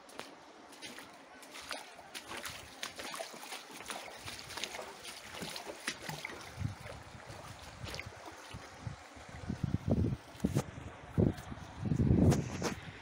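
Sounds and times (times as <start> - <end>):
stream running over stones: 0.0 - 10.6
wind buffeting microphone: 6.1 - 13.0.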